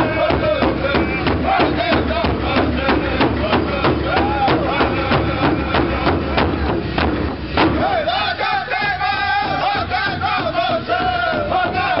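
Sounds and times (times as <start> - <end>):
men singing high in unison: 0.0 - 6.6, 7.7 - 12.0
large hand drum beat: 0.0 - 12.0.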